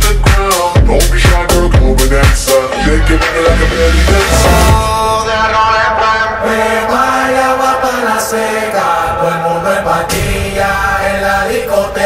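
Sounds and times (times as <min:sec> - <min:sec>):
dance music with chant-like notes: 0:00.0 - 0:12.0.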